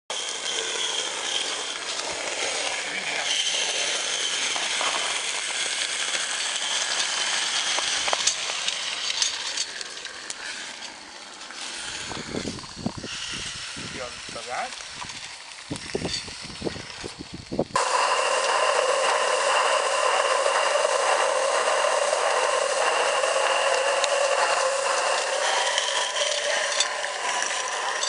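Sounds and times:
steam locomotive hissing: 0.1 - 28.0.

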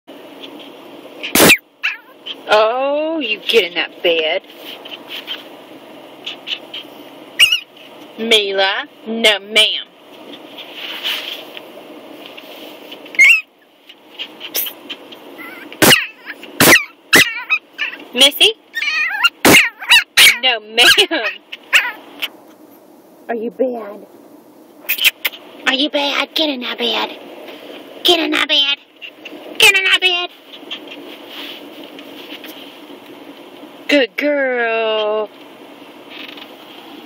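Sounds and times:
puppy barking: 1.2 - 2.4, 6.2 - 7.7, 13.2 - 13.5, 15.4 - 18.0, 18.7 - 22.4
puppy yipping: 1.2 - 2.4, 6.2 - 7.7, 13.1 - 13.6, 15.4 - 18.0, 18.7 - 22.3.

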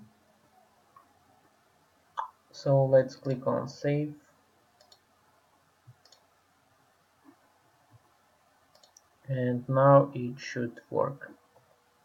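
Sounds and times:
computer mouse clicks: 4.8 - 5.1, 5.9 - 6.3, 8.7 - 9.1.

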